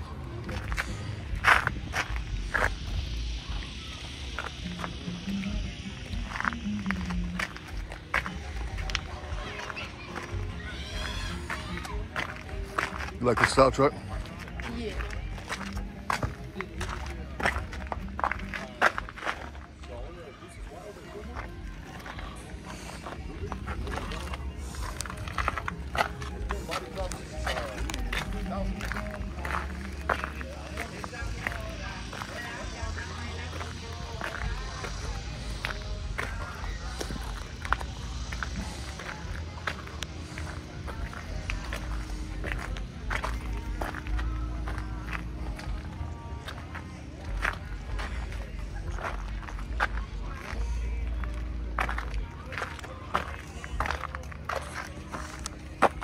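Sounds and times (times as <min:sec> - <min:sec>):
background voices: 0:00.0 - 0:56.0
music: 0:00.0 - 0:56.0
footsteps and clicks: 0:21.4 - 0:32.5.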